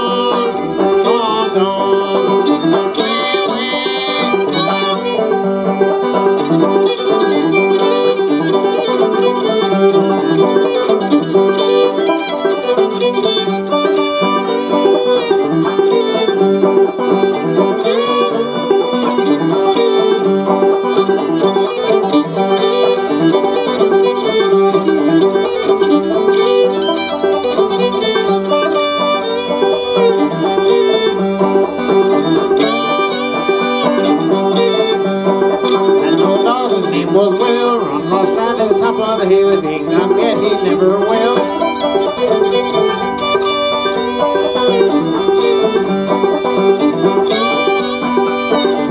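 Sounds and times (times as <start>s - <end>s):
banjo picking: 0.0s - 48.9s
fiddle melody: 0.0s - 48.9s.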